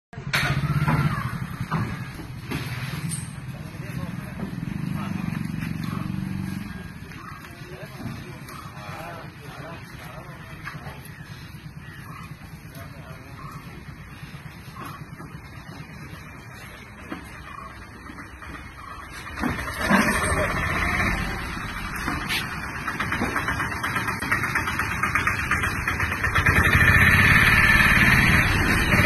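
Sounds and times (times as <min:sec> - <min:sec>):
vehicle engine idling: 0:00.2 - 0:29.0.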